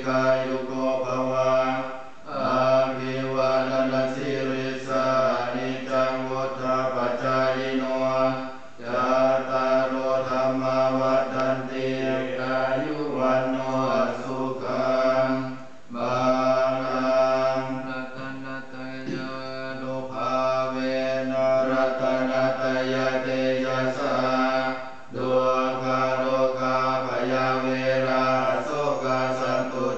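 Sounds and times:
monks chanting in unison: 0.0 - 29.9.

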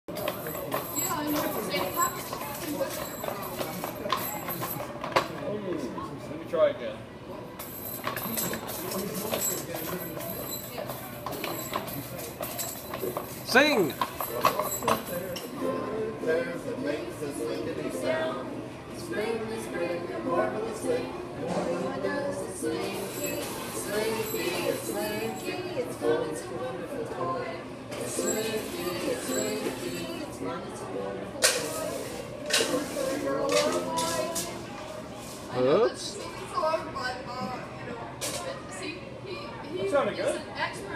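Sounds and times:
indistinct voices in a room: 0.1 - 40.9.

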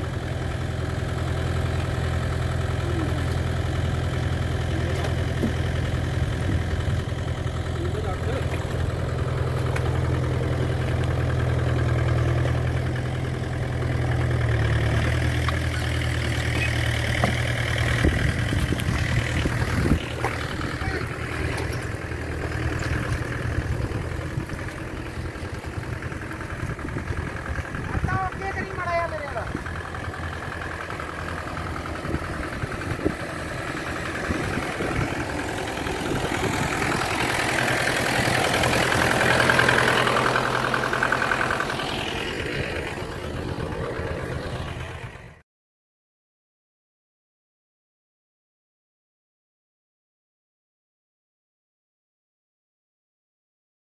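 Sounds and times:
tractor diesel engine under load: 0.0 - 45.4.

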